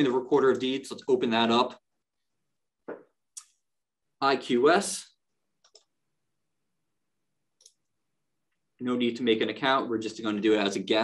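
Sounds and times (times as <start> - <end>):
computer mouse clicks: 5.6 - 6.0, 7.6 - 7.9.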